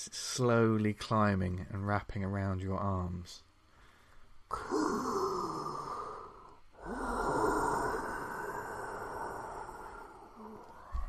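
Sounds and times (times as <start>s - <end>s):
person groaning breathily: 4.5s - 10.9s.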